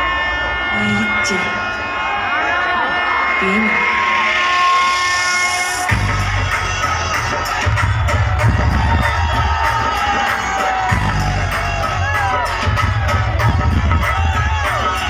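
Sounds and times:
loud dance music with pounding bass: 0:02.4 - 0:15.0.

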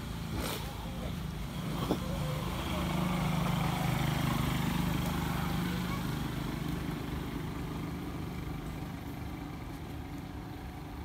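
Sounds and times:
motor engine humming: 0:00.0 - 0:11.0.

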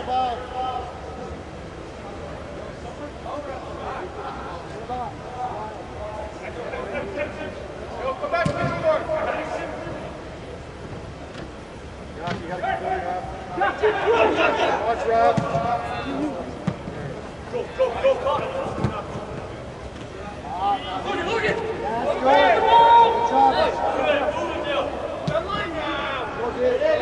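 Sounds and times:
players shouting and calling: 0:00.0 - 0:27.0.

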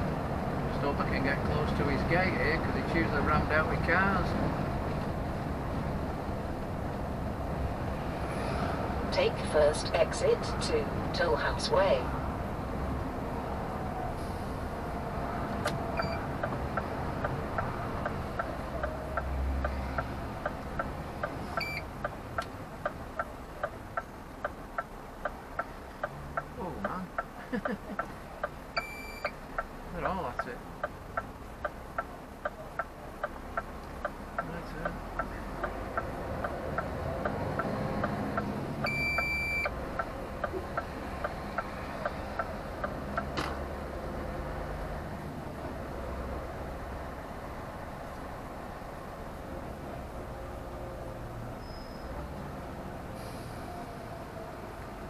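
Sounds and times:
lorry engine and road noise: 0:00.0 - 0:55.0
turn signal ticking: 0:15.6 - 0:45.8
short high beeps: 0:16.0 - 0:16.2, 0:21.6 - 0:21.8, 0:28.8 - 0:29.3, 0:38.9 - 0:39.7.

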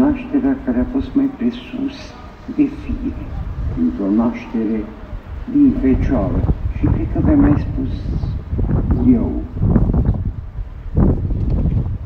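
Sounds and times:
wind buffeting microphone: 0:02.2 - 0:12.0.

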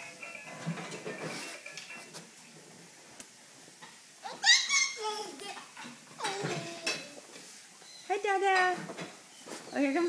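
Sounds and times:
baby call falling in pitch: 0:04.2 - 0:05.1
baby squealing: 0:04.2 - 0:05.4.

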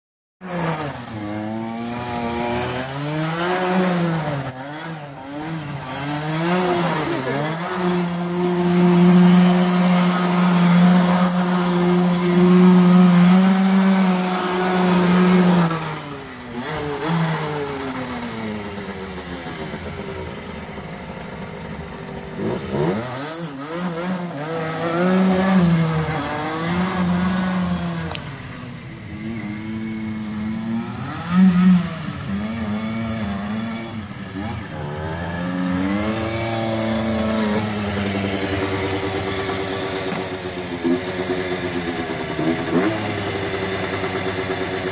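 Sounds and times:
dirt bike engine revving: 0:00.4 - 0:44.9.

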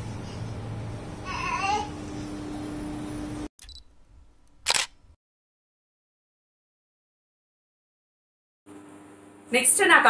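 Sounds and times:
camera shutter click: 0:04.6 - 0:05.0.

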